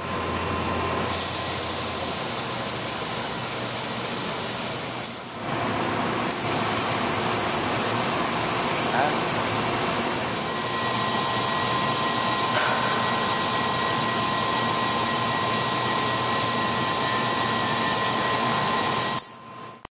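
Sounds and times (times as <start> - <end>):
high whine tones: 0.0 - 19.8.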